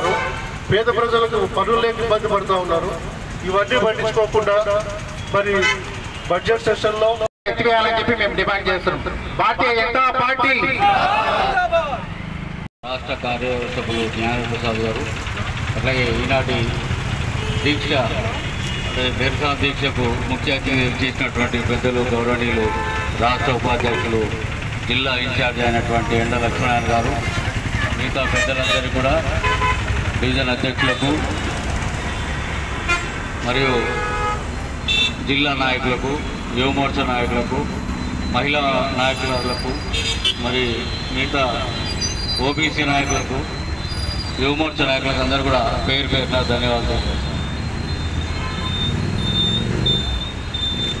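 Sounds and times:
road traffic rumble: 0.0s - 51.0s
man talking: 17.6s - 27.3s, 44.4s - 47.2s
high-pitched beeps: 37.0s - 39.9s, 41.7s - 46.1s.

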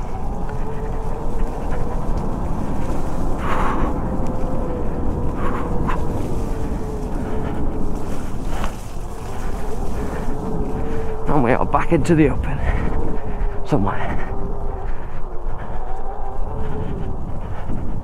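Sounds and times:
wind noise on microphone: 0.0s - 18.0s.

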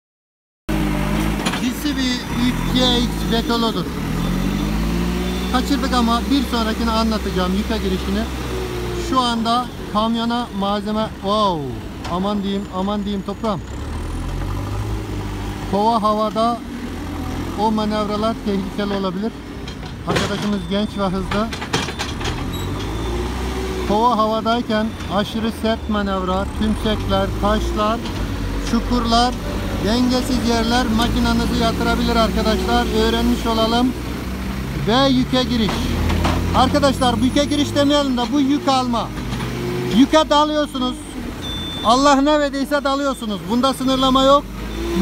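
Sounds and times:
diesel engine running: 0.7s - 45.0s.

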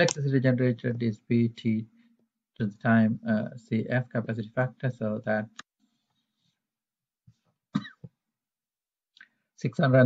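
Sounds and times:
man coughing: 7.7s - 8.1s.

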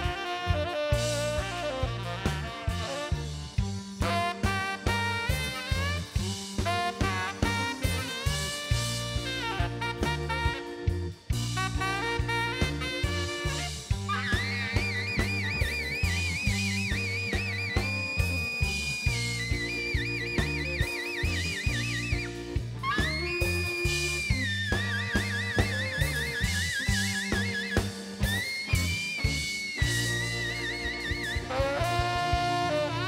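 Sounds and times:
drums and bass: 0.0s - 33.0s
high wavering lead notes: 7.9s - 33.0s.

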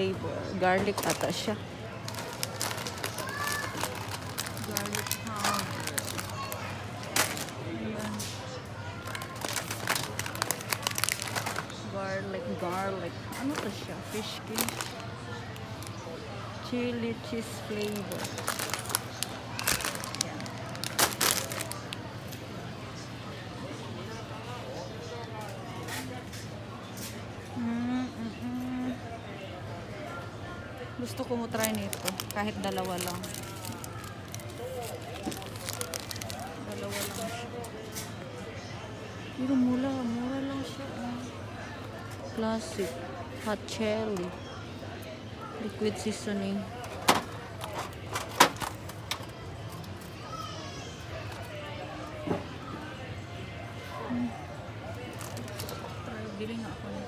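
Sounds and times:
plastic packets crinkling: 0.8s - 11.8s, 13.5s - 16.0s, 17.3s - 22.1s, 31.1s - 37.4s, 55.0s - 55.9s.

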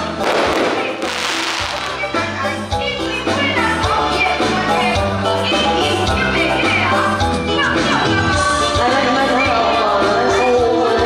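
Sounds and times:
firecrackers crackling: 0.0s - 2.6s
stage backing music: 0.0s - 11.0s.

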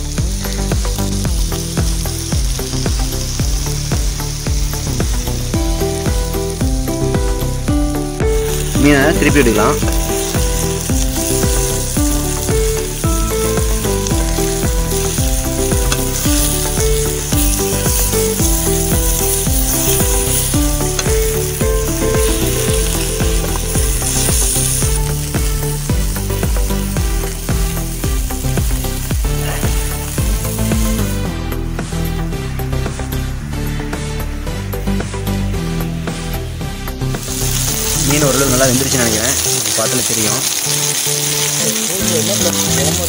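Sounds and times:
background music with beat: 0.0s - 43.0s
fish sizzling in oil: 0.0s - 43.0s.

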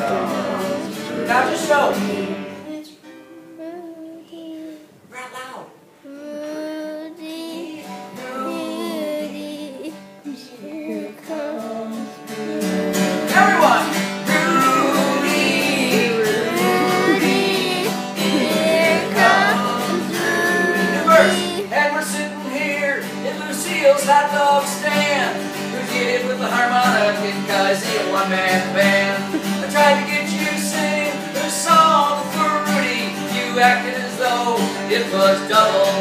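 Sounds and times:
wordless melody voice: 0.0s - 4.8s, 6.0s - 36.0s
acoustic guitar: 0.0s - 36.0s.

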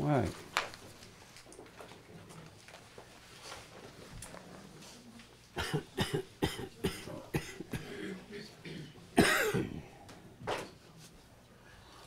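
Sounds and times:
person coughing: 5.6s - 10.0s.

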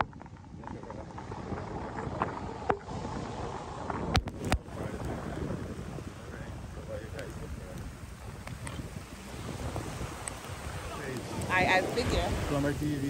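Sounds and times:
surf washing on beach: 0.0s - 13.0s
wind buffeting microphone: 0.0s - 13.0s.

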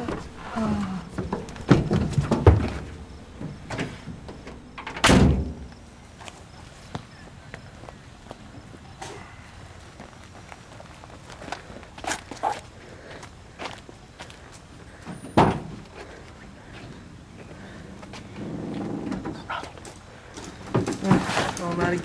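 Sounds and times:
tailgate slamming shut: 1.2s - 5.7s, 15.1s - 15.8s
footsteps on pavement: 5.7s - 15.1s, 15.8s - 18.4s.

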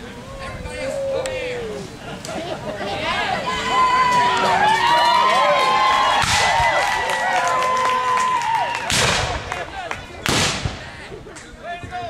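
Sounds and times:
musket shots: 10.3s - 10.8s.

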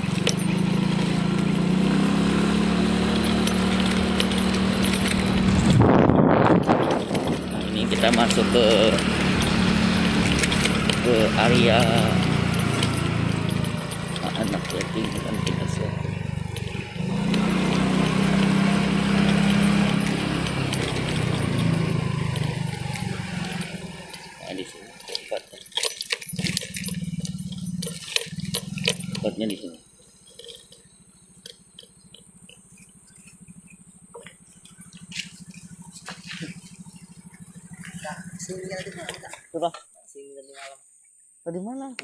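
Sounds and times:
small motorcycle engine: 0.0s - 39.9s.

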